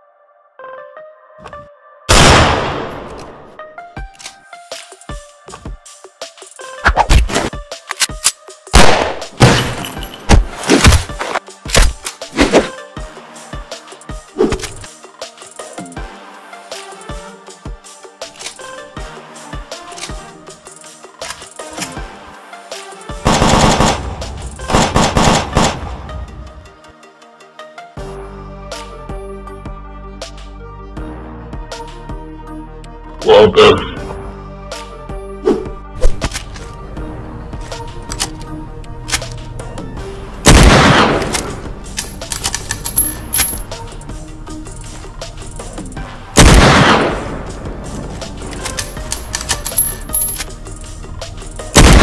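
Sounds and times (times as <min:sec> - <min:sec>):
metallic gun clicks and clinks: 0:09.5 - 0:10.3, 0:41.3 - 0:46.0, 0:48.5 - 0:51.0
automatic rifle fire: 0:23.3 - 0:24.0, 0:24.7 - 0:25.8, 0:46.4 - 0:47.2, 0:51.8 - 0:52.0.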